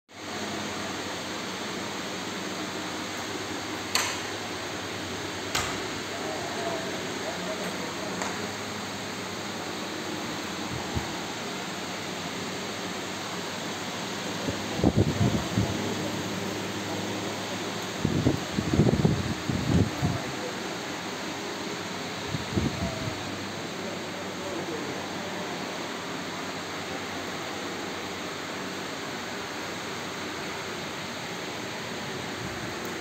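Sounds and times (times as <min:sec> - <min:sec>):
fan hiss: 0:00.1 - 0:33.0.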